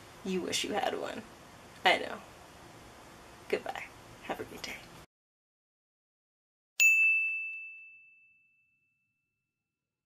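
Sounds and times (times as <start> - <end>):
bell-like ding: 6.8 - 9.4.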